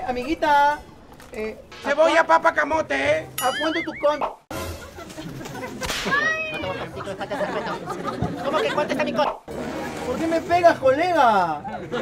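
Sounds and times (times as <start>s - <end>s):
whip-crack sound effect: 5.8s - 6.2s.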